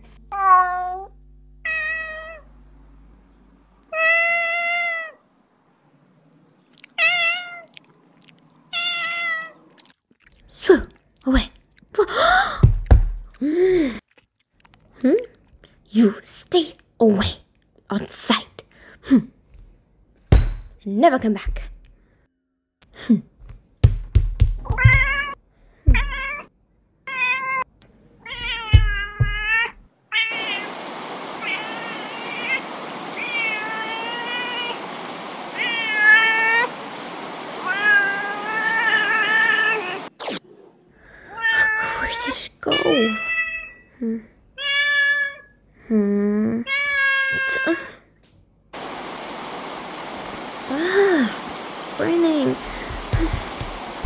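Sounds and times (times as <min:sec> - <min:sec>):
cat meowing: 0:00.3 - 0:02.5, 0:03.9 - 0:05.2, 0:06.9 - 0:07.8, 0:08.7 - 0:09.6, 0:24.7 - 0:26.5, 0:27.1 - 0:30.8, 0:31.4 - 0:34.8, 0:35.6 - 0:36.7, 0:37.6 - 0:40.1, 0:41.3 - 0:43.9, 0:44.6 - 0:45.5, 0:46.7 - 0:47.7
rain hissing: 0:28.4 - 0:40.2, 0:48.8 - 0:54.0.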